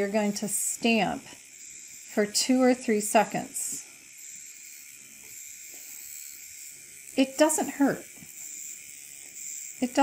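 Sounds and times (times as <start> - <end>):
microneedling pen buzzing: 0.0 - 10.0.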